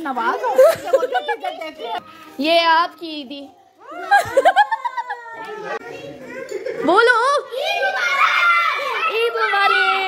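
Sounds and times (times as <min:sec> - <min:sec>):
children's voices and chatter: 0:00.0 - 0:10.0.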